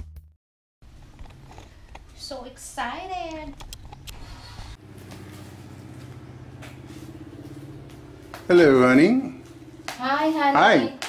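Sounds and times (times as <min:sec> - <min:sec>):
vehicle engine idling: 0:03.9 - 0:10.6.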